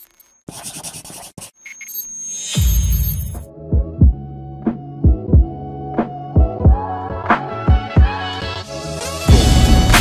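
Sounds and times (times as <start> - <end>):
scratching sound effect: 0.0 - 3.5.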